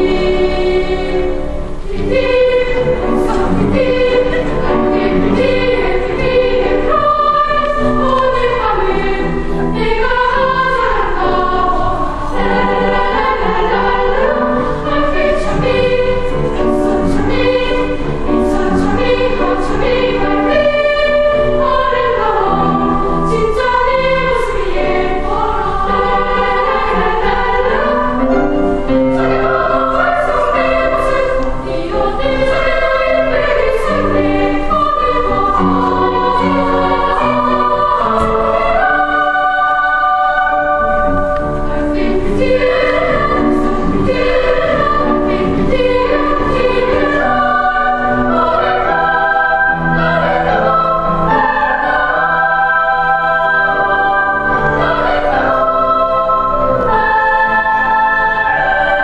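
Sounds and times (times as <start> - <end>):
children's choir singing: 0.0 - 59.0.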